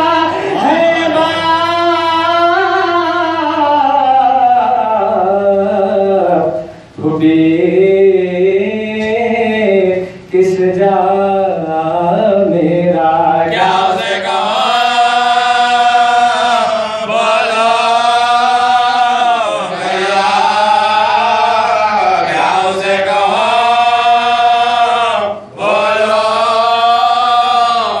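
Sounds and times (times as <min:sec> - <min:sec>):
men chanting a lament: 0:00.0 - 0:28.0.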